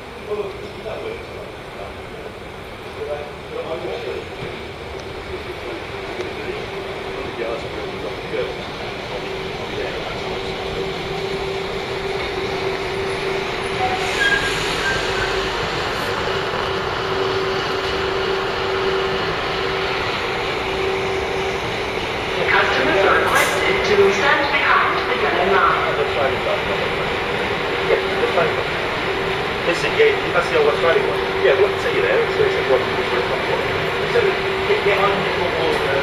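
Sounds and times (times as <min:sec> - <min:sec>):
diesel train approaching: 0:00.0 - 0:36.0
steady train whine: 0:00.0 - 0:36.0.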